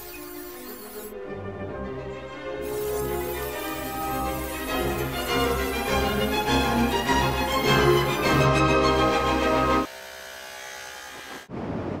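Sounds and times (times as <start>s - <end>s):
electric hair clippers buzzing: 2.6s - 8.2s, 9.8s - 11.5s.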